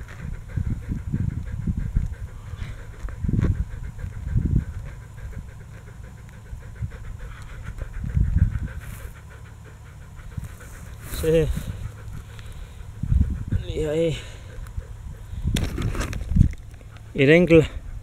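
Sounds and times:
dog panting: 0.0s - 18.0s.

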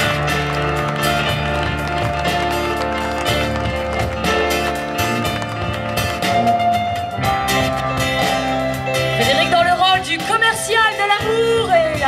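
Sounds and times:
held bass notes: 0.0s - 12.0s
live band playing: 0.0s - 12.0s.

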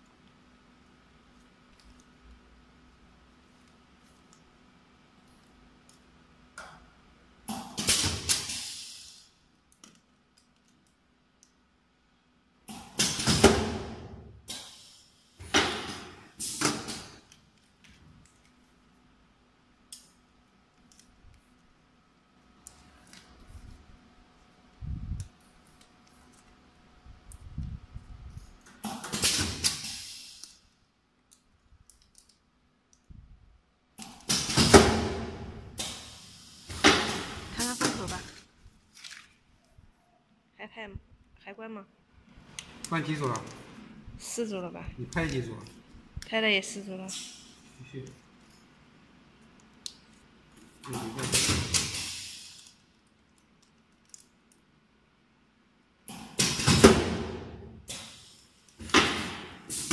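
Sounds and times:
compressed air hiss: 8.3s - 9.4s, 14.5s - 15.4s, 28.8s - 30.6s, 35.8s - 38.0s, 51.7s - 52.8s, 59.6s - 59.9s.

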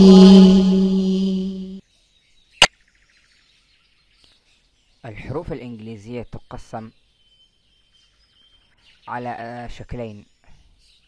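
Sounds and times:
person singing long note: 0.0s - 1.8s.

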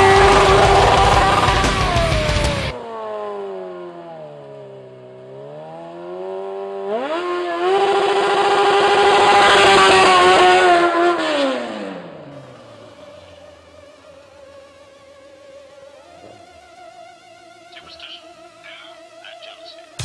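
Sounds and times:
motorcycle engine revving: 0.0s - 19.2s.

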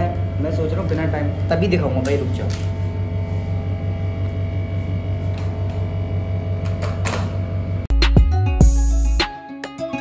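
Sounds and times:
low pulsing hum: 0.0s - 7.9s
music: 7.9s - 10.0s.

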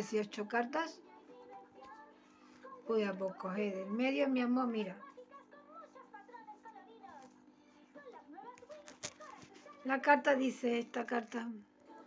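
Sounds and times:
low steady hum: 0.0s - 12.0s
faint background voices: 0.9s - 10.1s.

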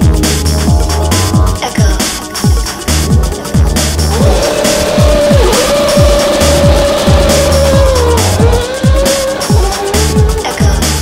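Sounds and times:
drum and bass music: 0.0s - 11.0s
racing car engine at high revs: 3.8s - 11.0s
tyres squealing: 4.1s - 11.0s.

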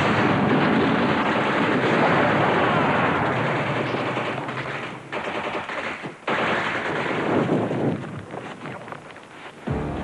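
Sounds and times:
machine-gun fire: 0.0s - 7.7s.

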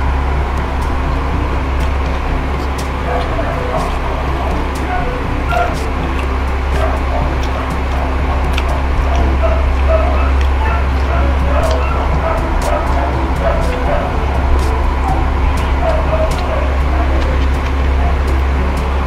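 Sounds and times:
faint background voices: 0.0s - 19.0s
loud low hum: 0.0s - 19.0s
chewing and mouth clicks: 0.6s - 19.0s.

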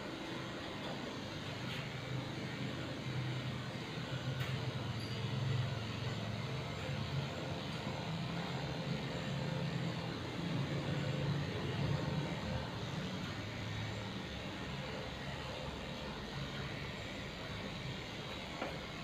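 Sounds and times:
electric clippers running: 0.0s - 19.0s.

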